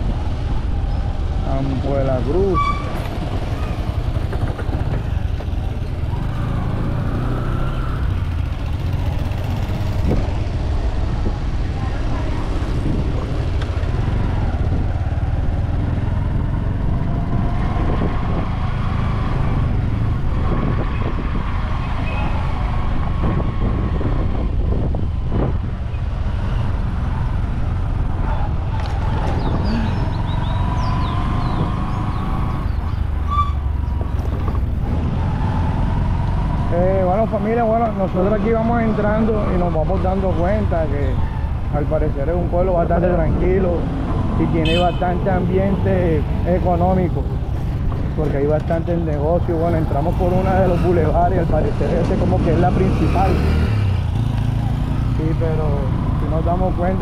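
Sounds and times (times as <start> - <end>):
vehicle engine and road noise: 0.0 - 57.0
wind buffeting microphone: 8.0 - 38.0.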